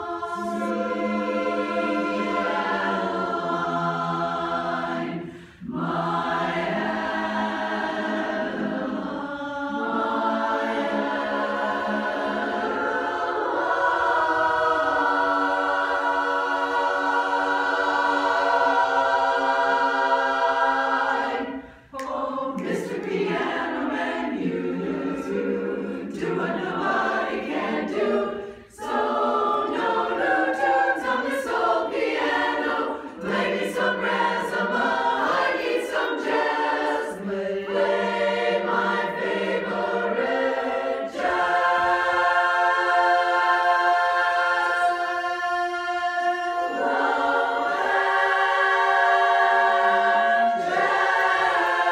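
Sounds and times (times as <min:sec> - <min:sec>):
women's chorus singing a cappella: 0:00.0 - 0:51.9.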